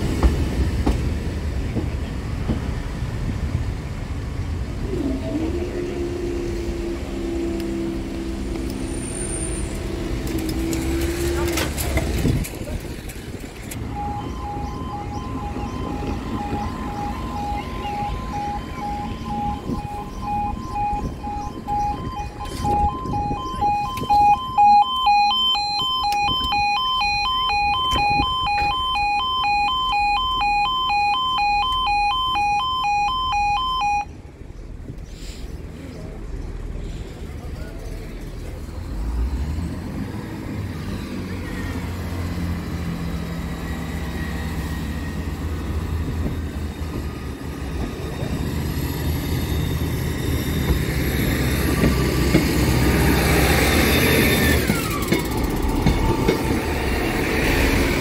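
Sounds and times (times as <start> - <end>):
higher alarm tone: 13.8 - 34.1
two-tone level crossing alarm: 13.8 - 34.1.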